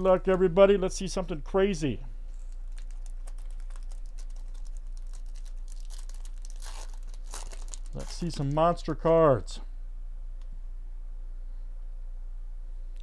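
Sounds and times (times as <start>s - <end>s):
foil wrapper crinkling and tearing: 2.3s - 8.6s.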